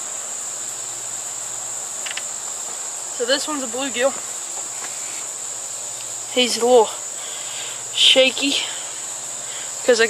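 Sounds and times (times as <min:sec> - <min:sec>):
insects chorus: 0:00.0 - 0:10.0.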